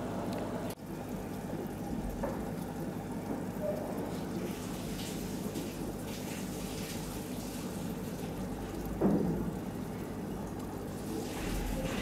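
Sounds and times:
aquarium water splashing and trickling: 0.0 - 12.0.

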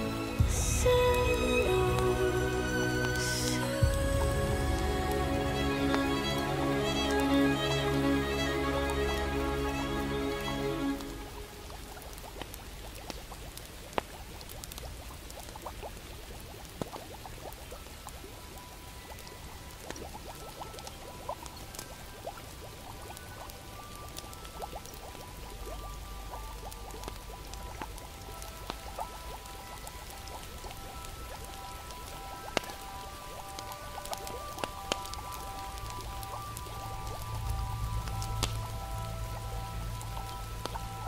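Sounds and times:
low rumble: 0.0 - 12.8, 35.8 - 41.0
fire crackling and popping: 0.0 - 41.0
rain hiss: 0.0 - 41.0
soft held music notes: 0.0 - 41.0.

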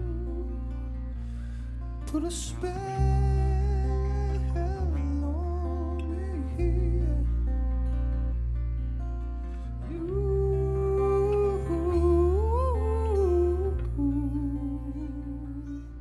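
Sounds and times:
acoustic guitar chords: 0.0 - 16.0
bass guitar: 0.0 - 16.0.

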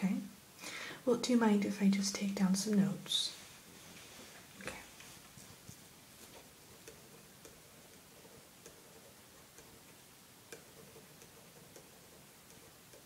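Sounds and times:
room hiss: 0.0 - 13.0
clock ticking: 6.7 - 13.0.

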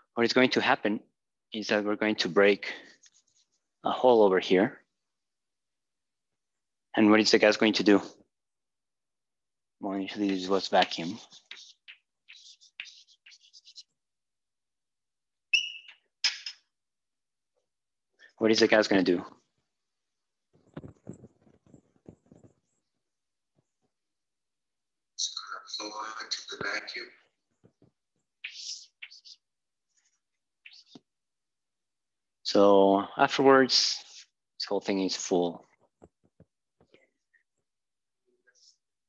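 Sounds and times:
chalk scratching on blackboard: 10.2 - 14.0, 28.4 - 29.4, 30.7 - 31.0, 33.8 - 34.4
chalk scrape: 10.6 - 14.0, 28.5 - 29.4, 33.8 - 34.4
chalk squeak: 10.8 - 14.0, 28.4 - 31.0, 33.8 - 34.4.

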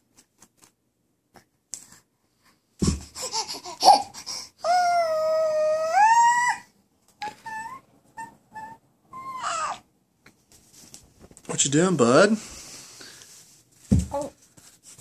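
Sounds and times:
infant squealing: 3.2 - 9.9
infant short high calls: 4.6 - 9.9.

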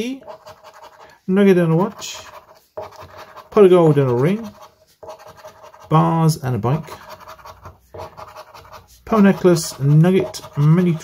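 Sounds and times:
coin scraping scratch card: 0.0 - 11.0.

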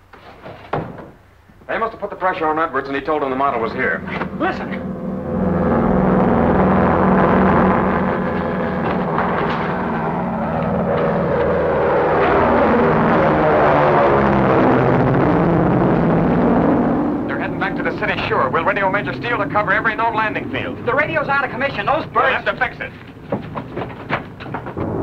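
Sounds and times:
propeller plane flying overhead: 2.2 - 25.0.

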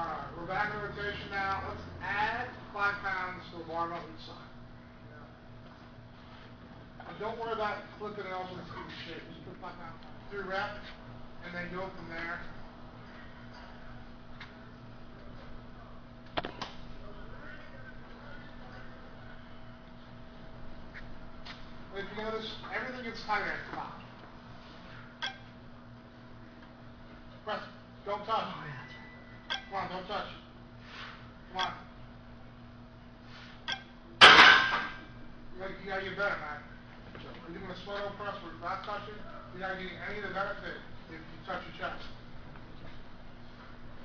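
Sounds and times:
steady low hum: 0.0 - 44.0
steel barbell clanging: 34.2 - 35.0.

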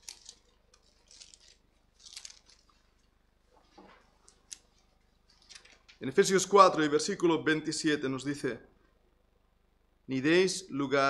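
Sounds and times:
faint rustling: 0.0 - 6.1.

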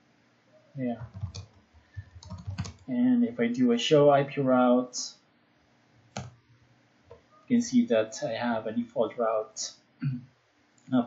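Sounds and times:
keyboard keystroke: 1.0 - 2.8.

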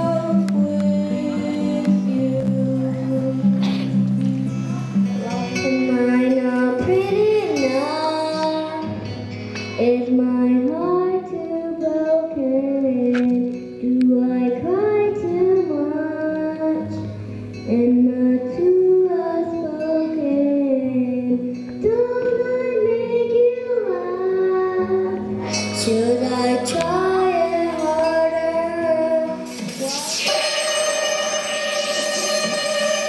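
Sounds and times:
girl singing into a microphone: 0.0 - 33.0
instrumental accompaniment of chords: 0.0 - 33.0.

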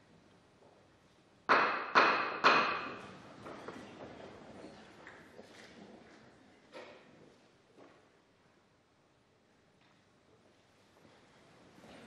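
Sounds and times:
sharp ringing knocks: 1.5 - 3.0.

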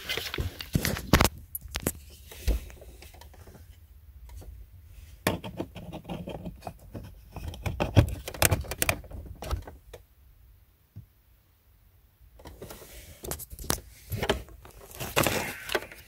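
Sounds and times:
hard plastic clicks and knocks: 5.2 - 10.0.

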